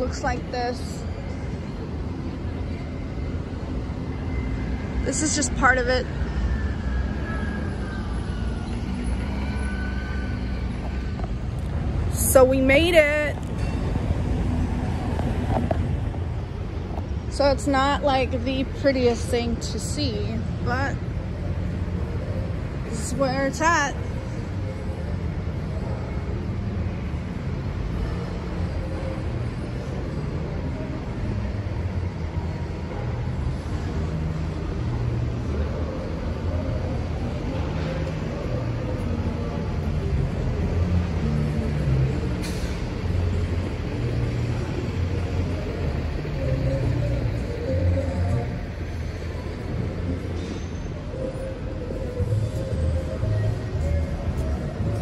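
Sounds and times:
low rumble of trucks and machinery: 0:00.0 - 0:55.0.

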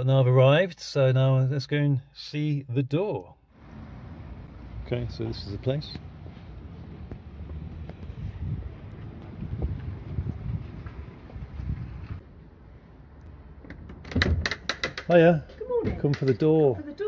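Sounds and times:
footsteps on path: 0:06.0 - 0:12.2.

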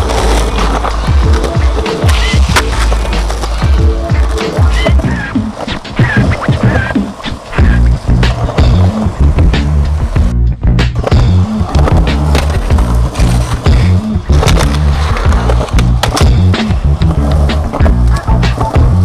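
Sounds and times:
skateboard clacks and knocks: 0:00.0 - 0:09.7, 0:11.0 - 0:19.0
music with heavy bassline: 0:00.0 - 0:19.0
skateboard wheels rolling on concrete: 0:00.0 - 0:19.0.

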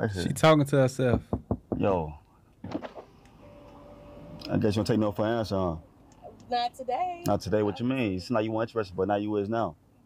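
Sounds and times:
power window motor whine: 0:02.9 - 0:05.0.

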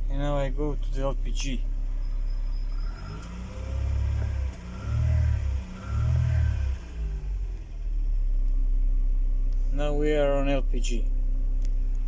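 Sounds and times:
car engine revving and idling: 0:00.0 - 0:12.0.

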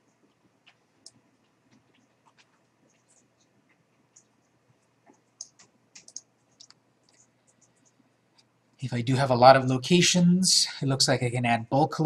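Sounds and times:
computer mouse clicks: 0:00.6 - 0:08.5.

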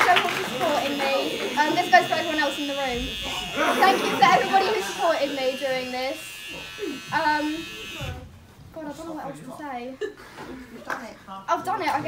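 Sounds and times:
electric hair clippers buzzing: 0:00.0 - 0:08.3.

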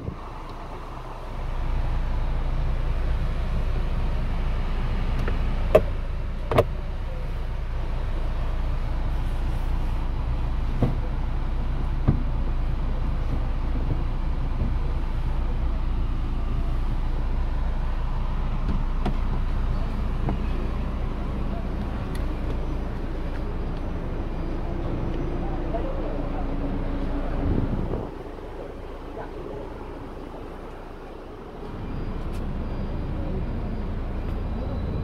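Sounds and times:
car engine idling: 0:00.0 - 0:35.0
light clicks of gear lever: 0:05.1 - 0:06.8, 0:21.7 - 0:23.9.

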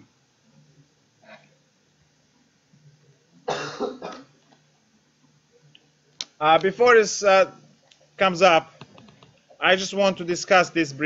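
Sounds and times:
man coughing: 0:03.5 - 0:04.3.

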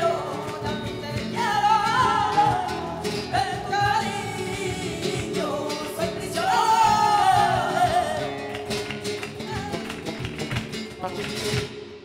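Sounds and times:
person singing flamenco: 0:00.0 - 0:11.9
cajon drum: 0:00.0 - 0:12.0
flamenco guitar: 0:00.0 - 0:12.0
rhythmic handclaps: 0:03.8 - 0:11.8.

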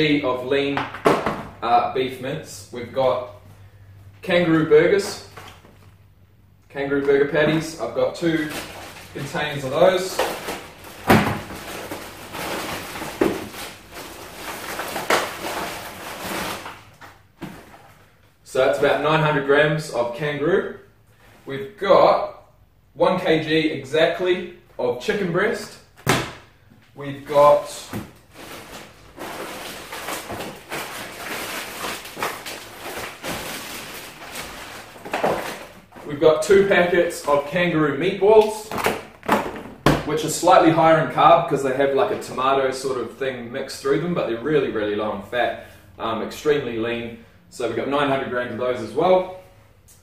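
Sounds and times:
plastic bags rustling: 0:07.2 - 0:18.3, 0:27.2 - 0:37.6
plastic packaging knocks: 0:10.2 - 0:13.6.

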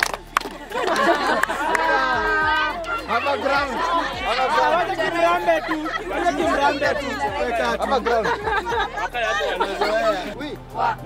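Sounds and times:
people chattering and laughing: 0:00.0 - 0:11.0.

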